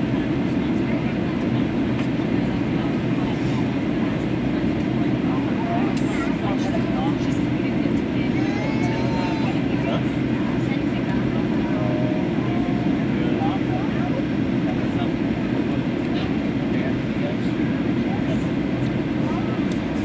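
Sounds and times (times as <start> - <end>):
faint passenger chatter: 0.0 - 20.0
jet engines humming: 0.0 - 20.0.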